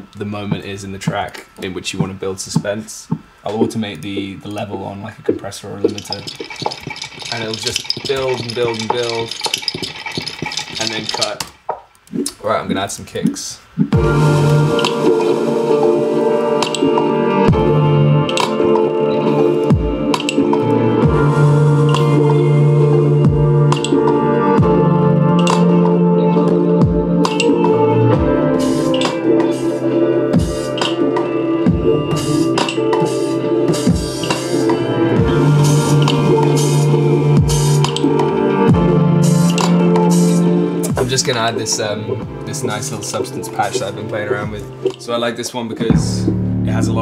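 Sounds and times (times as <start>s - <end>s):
clicky percussion: 0.5s - 12.4s, 16.6s - 17.1s, 18.3s - 20.7s, 21.8s - 22.4s, 23.7s - 24.7s, 25.3s - 25.9s, 27.2s - 27.7s, 28.8s - 29.7s, 30.4s - 31.2s, 32.2s - 38.4s, 39.2s - 41.3s, 44.6s - 45.1s
deep kick drums: 13.8s - 14.4s, 17.5s - 17.9s, 23.3s - 23.7s, 26.8s - 27.2s, 31.7s - 32.3s, 38.7s - 39.0s, 45.9s - 47.0s
synth chord layers: 13.9s - 41.1s
low bass note: 45.9s - 47.0s.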